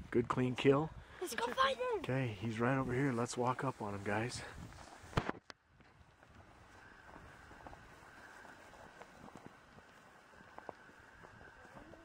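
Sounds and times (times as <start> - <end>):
footsteps through dry grass: 2.7 - 5.2, 5.8 - 12.0.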